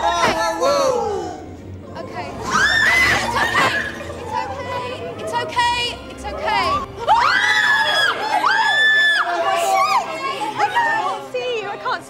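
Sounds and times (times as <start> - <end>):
people screaming in fright: 2.4 - 4.0, 7.0 - 10.2.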